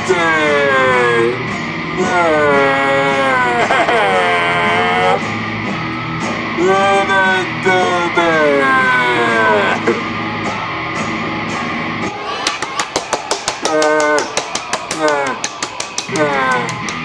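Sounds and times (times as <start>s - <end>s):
rock guitar: 0.0s - 12.3s.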